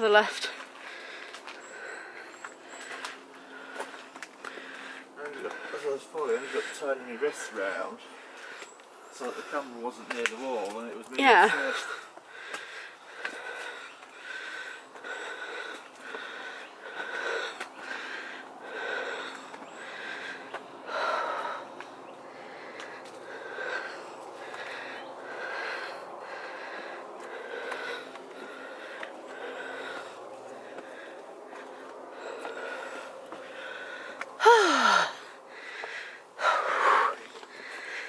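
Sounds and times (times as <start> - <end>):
person breathing heavily: 0.0 - 10.6, 11.2 - 38.0
footsteps on stone: 0.2 - 6.5, 8.3 - 11.2, 19.3 - 19.8, 20.4 - 23.6, 30.4 - 33.6.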